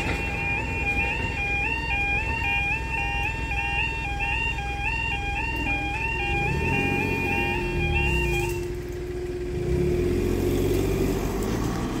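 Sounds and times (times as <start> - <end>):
level-crossing alarm warbling: 0.0 - 8.8
car engines pulling away: 4.9 - 12.0.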